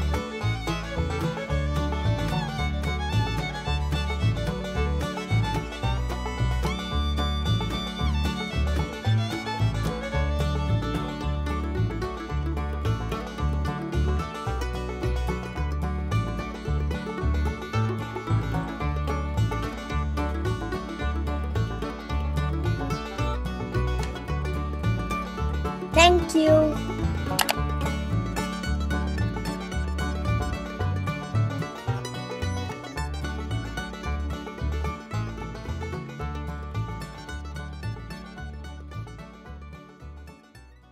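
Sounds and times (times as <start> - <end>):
upbeat bluegrass music: 0.0 - 40.9.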